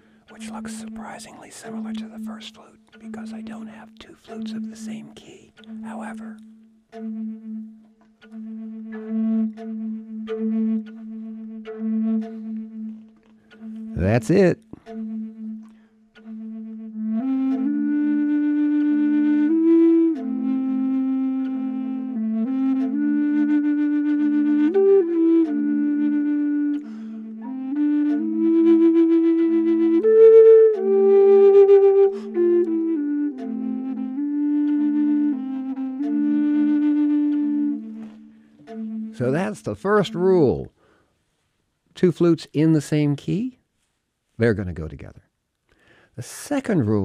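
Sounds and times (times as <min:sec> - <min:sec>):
slow flute melody: 0:00.0 - 0:41.0
looped low flute note: 0:05.6 - 0:40.5.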